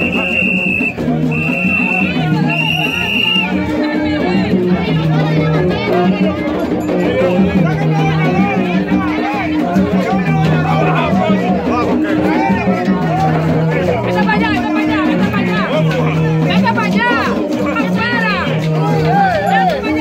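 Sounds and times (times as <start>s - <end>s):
crowd shouting and singing: 0.0s - 20.0s.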